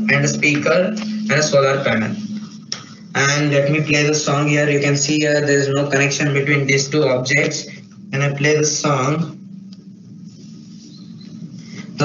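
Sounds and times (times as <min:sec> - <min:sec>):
weak low hum: 0:00.0 - 0:12.0.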